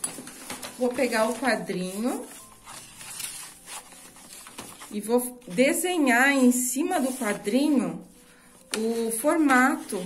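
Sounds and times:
paper rustling and crinkling: 0:00.0 - 0:10.0.

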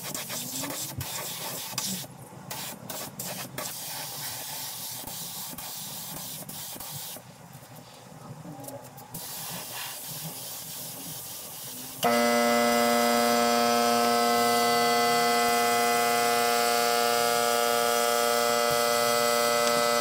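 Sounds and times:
spray gun hissing: 0:00.1 - 0:07.2, 0:09.2 - 0:20.0.

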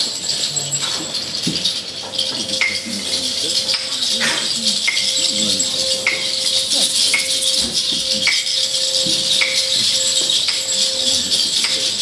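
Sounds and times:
shaker rattling: 0:00.0 - 0:12.0
steady held tone: 0:00.0 - 0:12.0.

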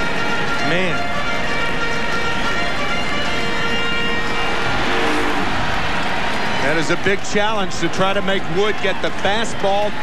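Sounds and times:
stadium crowd roar: 0:02.4 - 0:10.0.

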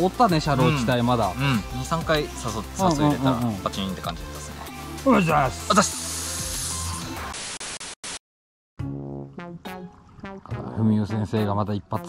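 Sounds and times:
background music: 0:00.0 - 0:07.3, 0:08.8 - 0:12.0
static hiss: 0:05.0 - 0:08.2.

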